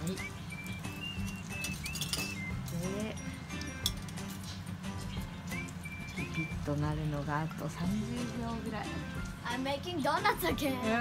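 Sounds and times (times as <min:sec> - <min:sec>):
whistle-like music melody: 0:00.0 - 0:07.2.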